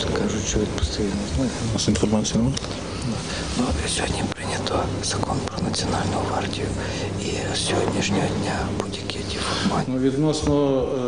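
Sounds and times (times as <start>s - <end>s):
man speaking: 0.0s - 11.0s
steady low hum: 0.0s - 11.0s.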